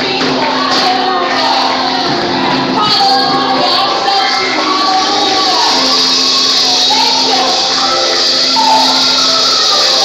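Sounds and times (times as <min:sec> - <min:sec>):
women singing gospel: 0:00.0 - 0:10.0
tambourine shaking: 0:04.8 - 0:10.0.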